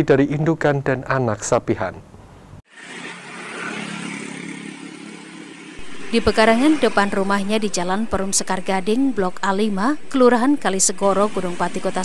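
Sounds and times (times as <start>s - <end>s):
road noise: 2.0s - 12.0s
motor scooter engines humming: 2.7s - 12.0s.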